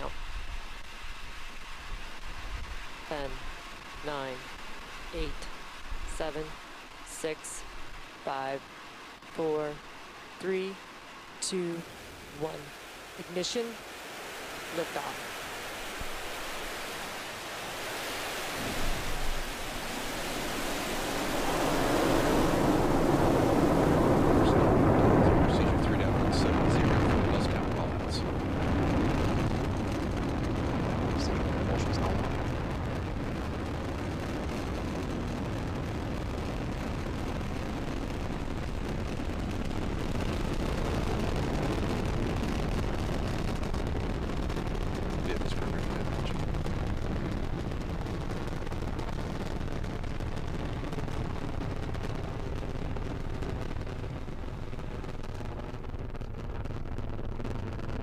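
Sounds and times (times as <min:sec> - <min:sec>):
rocket engines roaring: 0:00.0 - 0:57.8
sharp crackles: 0:00.0 - 0:58.0.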